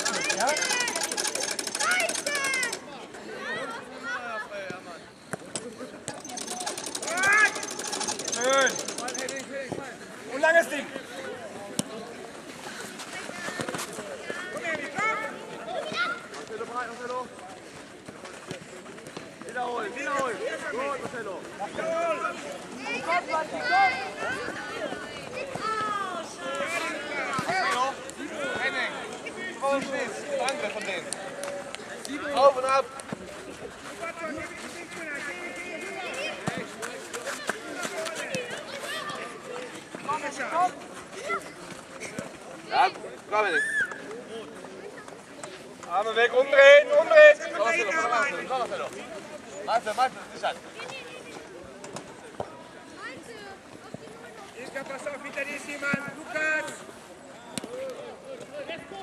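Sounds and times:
players and onlookers shouting: 0:00.0 - 0:03.6, 0:06.2 - 0:09.4
children's voices: 0:00.0 - 0:04.4
children shouting and calling: 0:00.0 - 0:04.6, 0:13.0 - 0:16.4, 0:21.8 - 0:29.1, 0:37.2 - 0:39.7
open-air background noise: 0:00.0 - 0:59.0.

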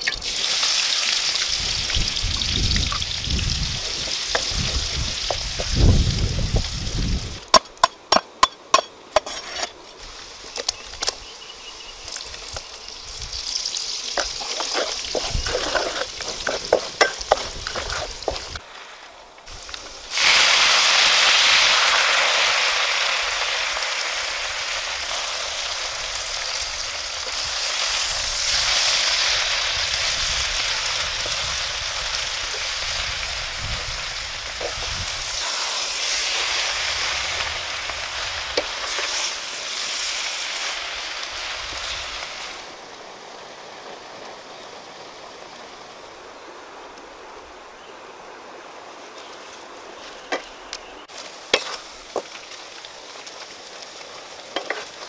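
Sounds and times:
greens sizzling in hot oil: 0:00.0 - 0:46.2, 0:49.1 - 0:55.0
wooden spatula stirring: 0:14.2 - 0:18.6.

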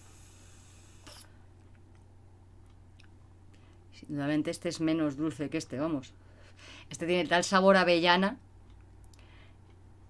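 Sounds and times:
vape draw hiss: 0:00.0 - 0:01.3
steady low hum: 0:00.0 - 0:10.0.

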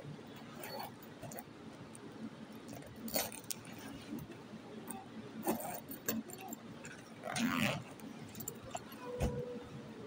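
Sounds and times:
backpack fabric rustling: 0:07.2 - 0:07.9.

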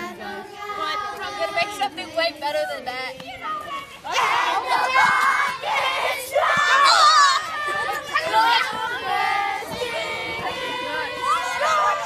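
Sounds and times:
children singing together: 0:00.0 - 0:02.1, 0:04.0 - 0:12.0.

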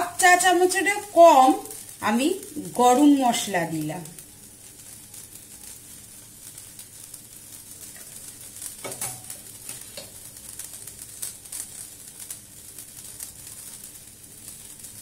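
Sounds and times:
food sizzling in oil: 0:00.0 - 0:15.0.

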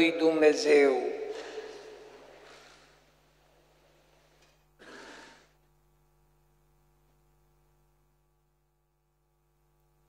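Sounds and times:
man's amplified speech reverberating: 0:00.0 - 0:02.8
faint steady hum: 0:00.0 - 0:10.0.

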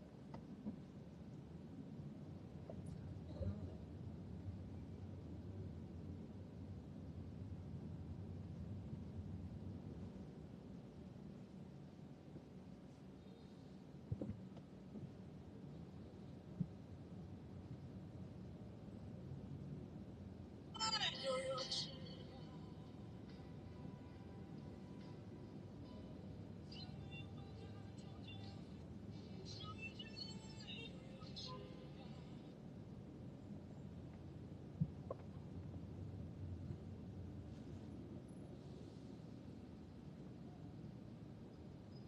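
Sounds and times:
low steady rumble: 0:00.0 - 0:42.0.

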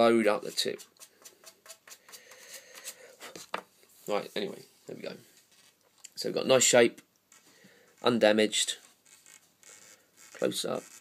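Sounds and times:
chalk scraping on cue tip: 0:09.0 - 0:11.0.

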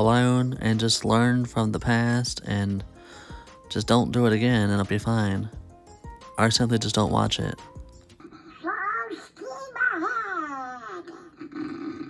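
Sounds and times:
cartoon duck voice snoring: 0:11.1 - 0:12.0.

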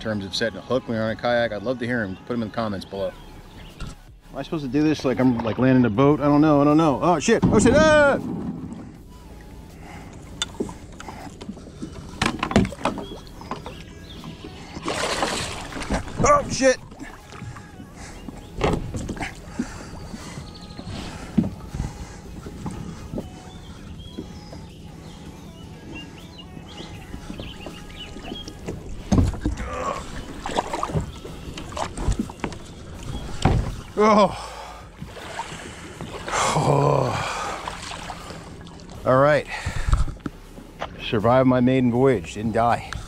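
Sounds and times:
water sloshing: 0:04.9 - 0:41.2
paddle knocking on hull: 0:07.3 - 0:08.8, 0:12.2 - 0:17.8, 0:18.6 - 0:23.3, 0:26.6 - 0:33.9
person grunting: 0:36.4 - 0:37.4.

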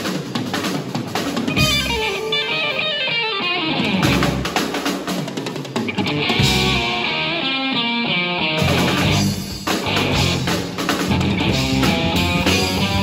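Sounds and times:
drum kit: 0:00.0 - 0:13.0
electric guitar picking runs: 0:01.5 - 0:04.6, 0:05.8 - 0:13.0
electric bass: 0:01.6 - 0:02.7, 0:03.5 - 0:04.6, 0:06.0 - 0:13.0.

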